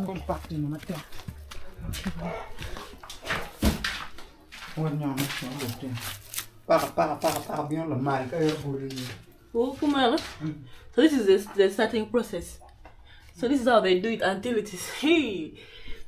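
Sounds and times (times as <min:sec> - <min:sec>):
people talking: 0:06.7 - 0:12.6.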